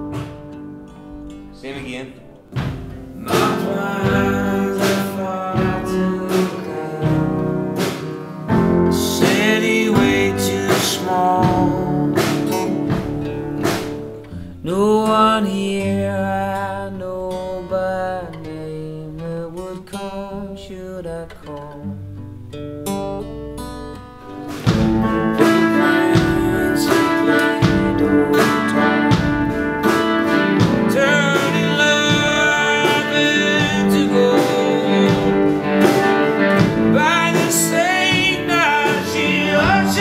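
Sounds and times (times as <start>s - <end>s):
strummed acoustic guitar: 0.0s - 40.0s
man singing: 1.5s - 2.4s, 3.2s - 12.9s, 14.6s - 22.0s, 25.0s - 40.0s.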